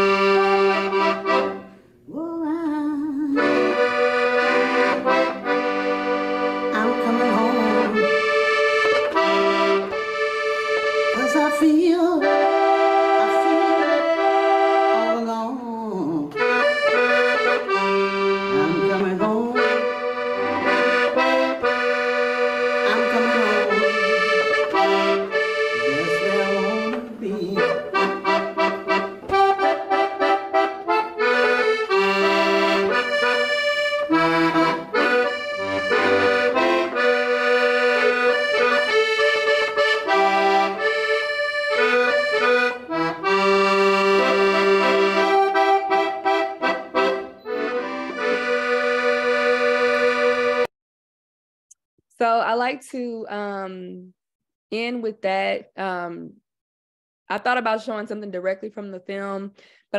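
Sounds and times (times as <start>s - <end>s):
button accordion playing: 0.0s - 1.9s, 3.2s - 50.7s
woman singing: 2.1s - 3.6s, 6.7s - 8.1s, 11.1s - 12.4s, 13.2s - 14.2s, 14.9s - 16.4s, 18.5s - 19.8s, 22.9s - 23.9s, 25.9s - 27.9s.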